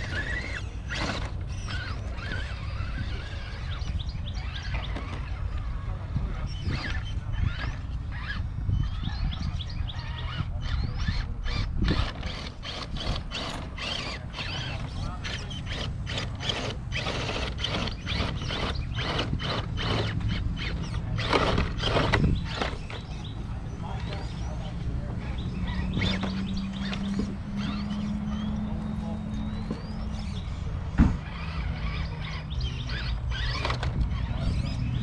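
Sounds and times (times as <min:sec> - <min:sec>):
toy truck clicking and crunching: 0:00.0 - 0:03.6, 0:10.7 - 0:23.1
birds chirping: 0:00.0 - 0:35.0.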